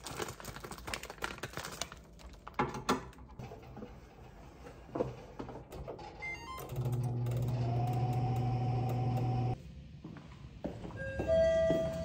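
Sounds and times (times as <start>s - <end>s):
oven fan humming and whining: 3.4s - 9.6s.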